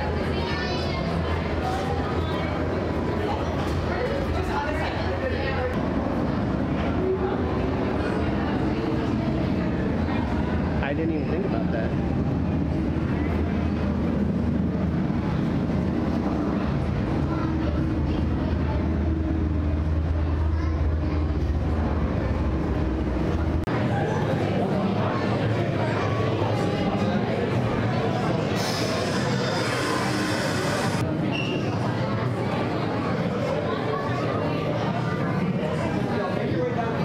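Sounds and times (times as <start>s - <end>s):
steady low hum: 0.0s - 31.3s
indistinct voices: 11.6s - 37.0s.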